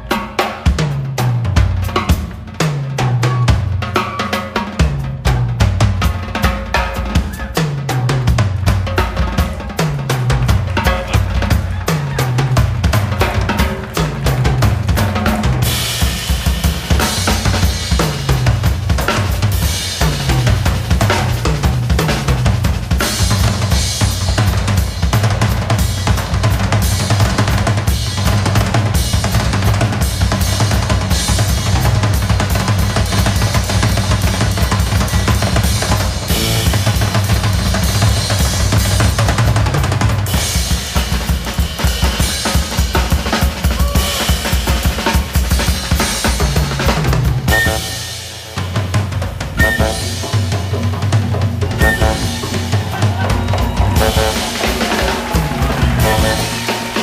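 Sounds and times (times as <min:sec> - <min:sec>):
drum kit played busily: 0:00.0 - 0:57.0.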